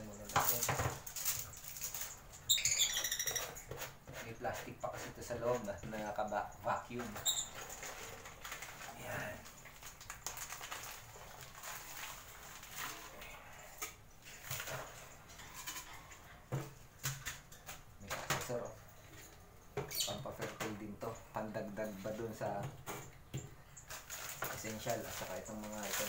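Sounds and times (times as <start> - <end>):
lovebirds chirping: 0.0 - 8.3, 18.5 - 24.0
plastic rustling: 0.1 - 2.6, 6.9 - 13.4, 23.8 - 26.0.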